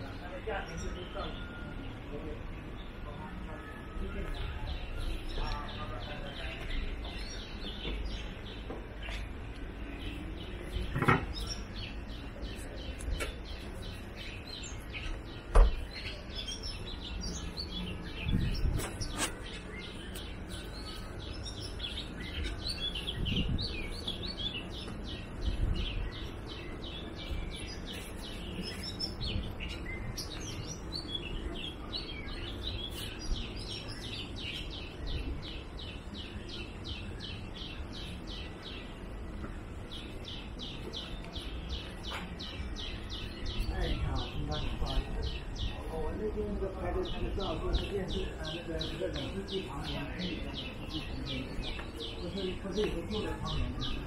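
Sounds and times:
small birds chirping: 0:00.0 - 0:54.0
sharp knock: 0:15.5 - 0:15.8.

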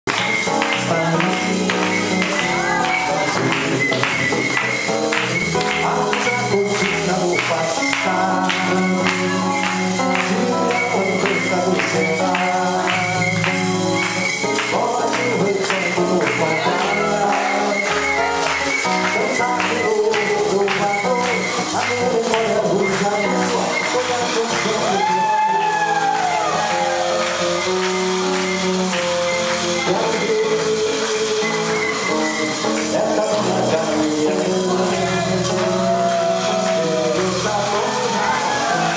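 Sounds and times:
acoustic guitar samba: 0:00.1 - 0:38.9
percussive beat: 0:00.1 - 0:38.9.

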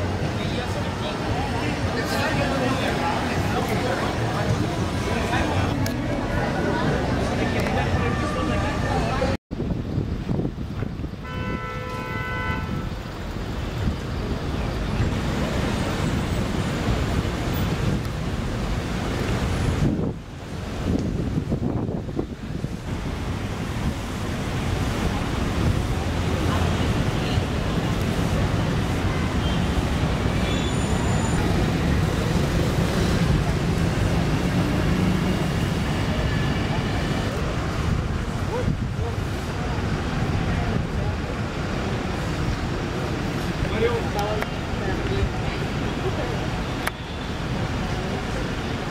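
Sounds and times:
street noise rumble: 0:00.0 - 0:48.9
traffic engine hum: 0:00.0 - 0:48.9
car horn: 0:11.2 - 0:13.0.

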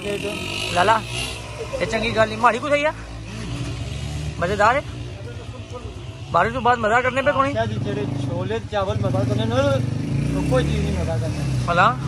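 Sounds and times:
vehicle engine drone: 0:00.0 - 0:12.0
man talking: 0:01.7 - 0:03.1, 0:04.4 - 0:12.0.

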